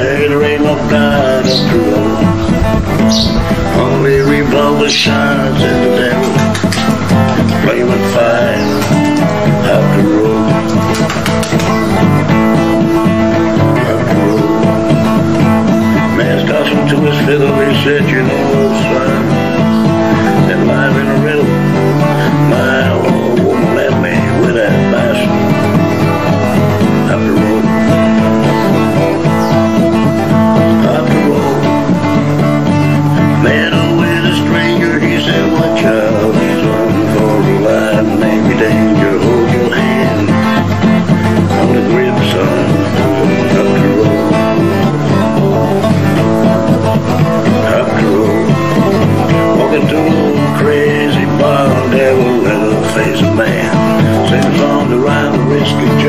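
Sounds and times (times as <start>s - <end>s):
acoustic guitar strumming: 0.0s - 56.0s
man singing roughly: 0.0s - 56.0s.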